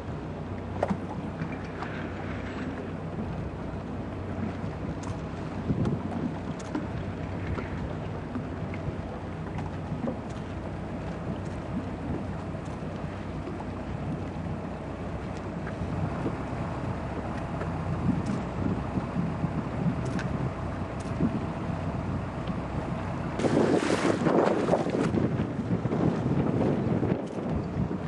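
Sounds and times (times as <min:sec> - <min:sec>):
water rushing along hull: 0:00.0 - 0:28.0
wind buffeting microphone: 0:04.3 - 0:28.0.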